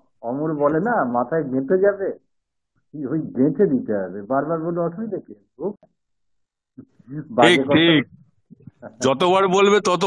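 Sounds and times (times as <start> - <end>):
man speaking over video call: 0.0 - 5.9, 6.8 - 10.0.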